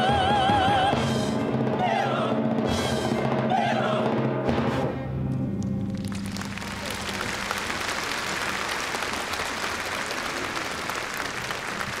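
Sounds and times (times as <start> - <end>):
audience applauding: 5.9 - 12.0.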